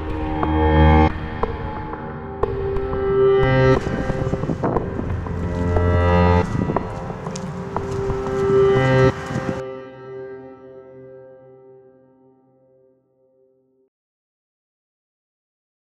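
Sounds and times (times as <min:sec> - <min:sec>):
background music held notes: 0:00.0 - 0:13.4.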